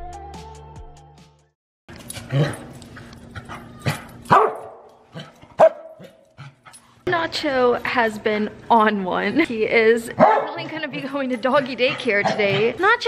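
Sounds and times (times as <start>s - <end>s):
dog barking sharply: 4.3s - 4.9s, 5.6s - 6.2s, 10.2s - 10.6s.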